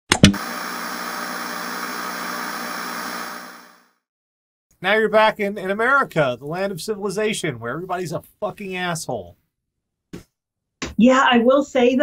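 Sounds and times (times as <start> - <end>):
steady electronic hiss: 0.4 - 3.8.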